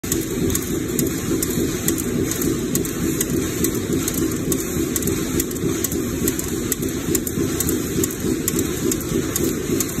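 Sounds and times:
machinery running: 0.0 - 10.0.

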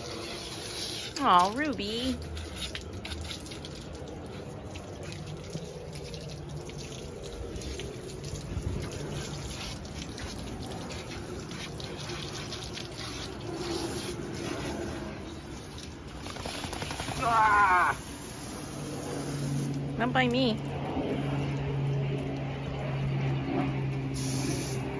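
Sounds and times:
hose water splashing: 0.0 - 20.0, 24.1 - 24.9.

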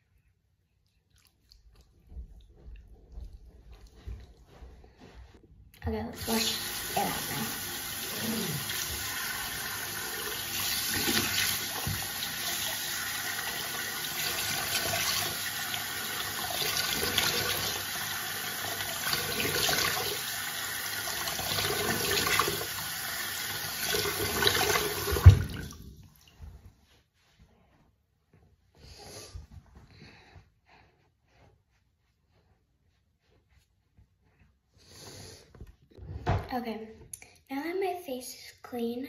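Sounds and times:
tap water running into sink: 6.2 - 26.0.

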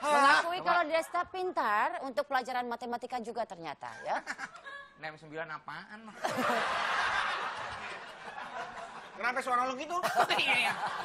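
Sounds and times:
audience laughing: 6.2 - 9.2, 10.0 - 11.0.

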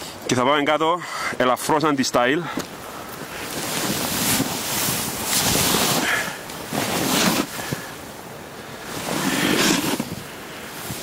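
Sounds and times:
wind buffeting microphone: 2.7 - 11.0.

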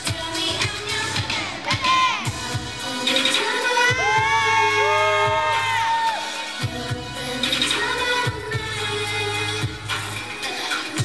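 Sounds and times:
steady drum beat: 0.0 - 8.8
dance song over sound system: 0.0 - 11.0
woman singing: 0.0 - 11.0.

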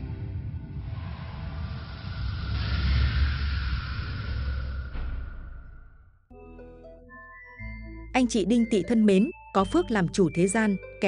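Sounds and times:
hissing whoosh: 0.7 - 6.2.

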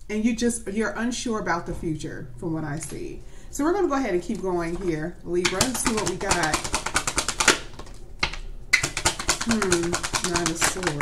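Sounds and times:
cards being shuffled: 5.5 - 11.0.

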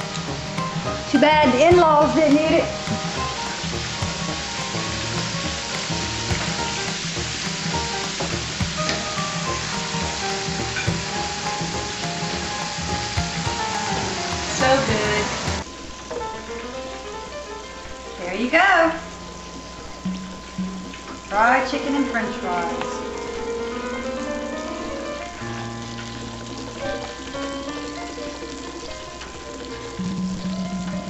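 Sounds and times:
background music: 0.0 - 31.0
food sizzling in hot oil: 0.0 - 31.0.

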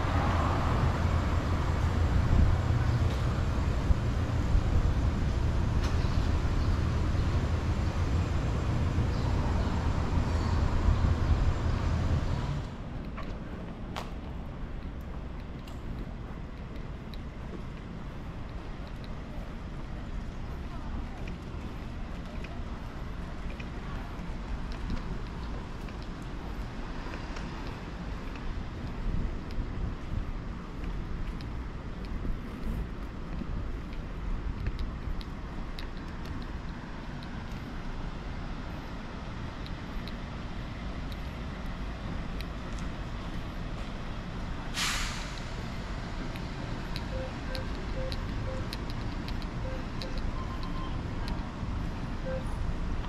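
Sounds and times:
low traffic rumble: 0.0 - 53.0
short sharp hiss: 44.7 - 45.6
faint beeping: 46.8 - 51.2, 52.2 - 52.7.

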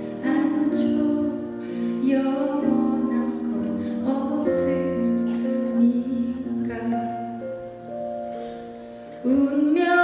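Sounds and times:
woman singing into microphone: 0.0 - 7.6, 9.2 - 10.0
piano accompaniment: 0.0 - 10.0.

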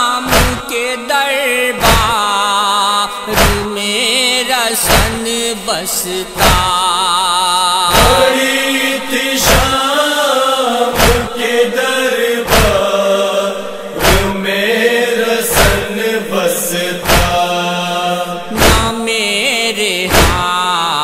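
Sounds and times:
person chanting a lament: 0.0 - 21.0
chest-beating thuds: 0.3 - 0.7, 1.8 - 2.2, 3.4 - 3.7, 4.9 - 5.3, 6.4 - 6.8, 8.0 - 8.3, 9.4 - 9.8, 11.0 - 11.6, 12.4 - 12.9, 14.0 - 14.5, 15.5 - 16.0, 17.0 - 17.5, 18.5 - 19.0, 20.1 - 20.5.

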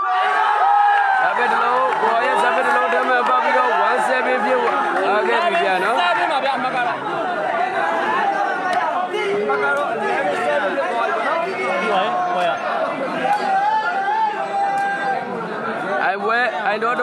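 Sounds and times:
crowd chattering: 0.0 - 17.0.

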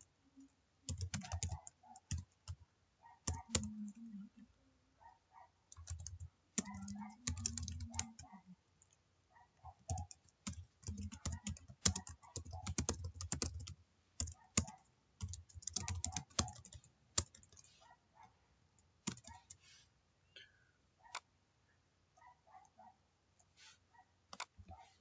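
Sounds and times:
typing on computer keyboard: 0.9 - 2.6, 3.2 - 4.0, 5.7 - 9.0, 9.8 - 17.7, 19.0 - 19.6.

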